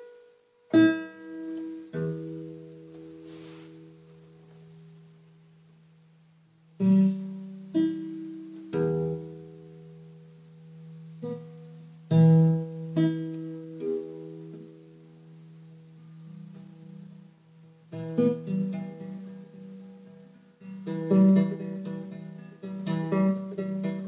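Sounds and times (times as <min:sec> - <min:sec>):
plucked acoustic guitar notes: 0:00.0 - 0:05.3, 0:06.8 - 0:24.0.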